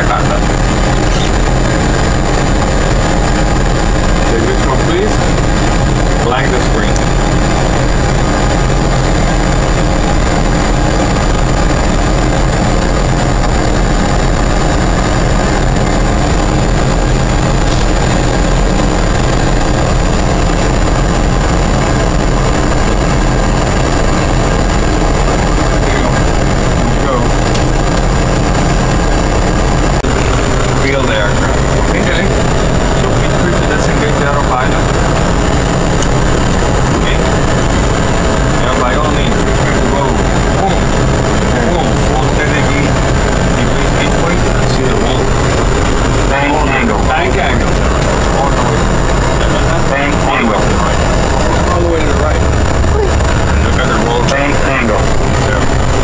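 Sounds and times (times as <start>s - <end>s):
airliner cockpit engine rush: 0.0s - 56.0s
thin high whine: 0.0s - 56.0s.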